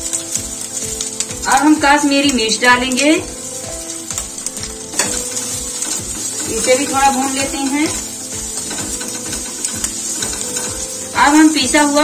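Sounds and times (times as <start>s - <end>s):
soft background music: 0.0s - 12.0s
spatula scraping and knocking pan: 2.9s - 12.0s.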